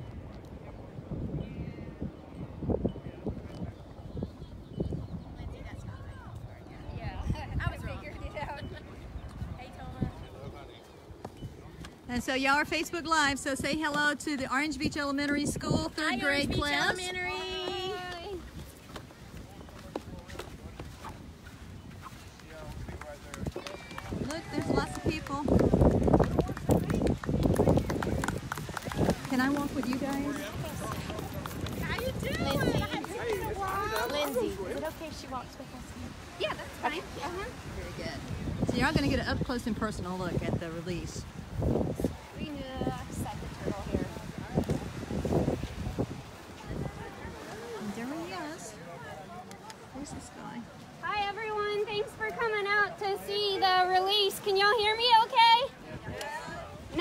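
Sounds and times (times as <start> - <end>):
wind buffeting microphone: 0.0 - 49.0, 49.7 - 57.0
crowd chatter: 0.0 - 57.0.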